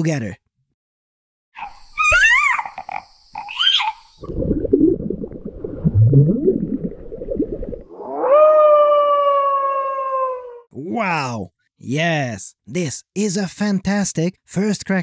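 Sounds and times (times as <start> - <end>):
cartoon baby dinosaur squeaky calls: 1.6 - 4.1
muffled underwater rumbling: 4.2 - 8.1.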